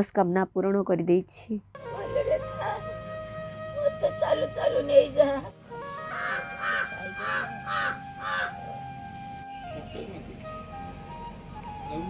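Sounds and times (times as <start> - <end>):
quiet background music: 0.0 - 12.0
crow cawing: 5.8 - 9.0.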